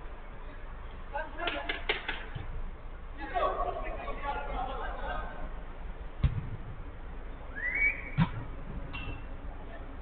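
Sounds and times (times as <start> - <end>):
football kicked: 6.2 - 6.8
short rising whistle: 7.5 - 8.3.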